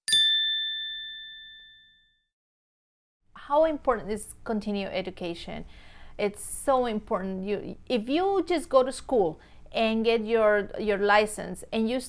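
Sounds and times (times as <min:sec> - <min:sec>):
two-tone chime ding: 0:00.1 - 0:02.3.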